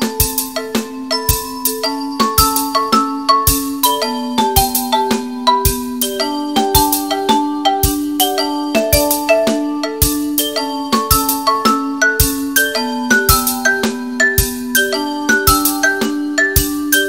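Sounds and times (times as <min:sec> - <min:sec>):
mallet instruments bell-like notes: 0:00.0 - 0:17.0.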